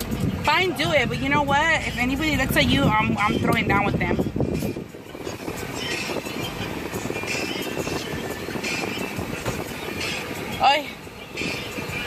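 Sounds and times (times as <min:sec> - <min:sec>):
car cabin engine rumble: 0:00.0 - 0:12.0.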